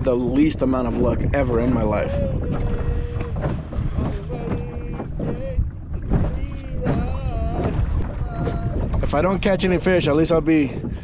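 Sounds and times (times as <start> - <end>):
water noise from boat: 0.0 - 11.0
wind noise: 0.0 - 11.0.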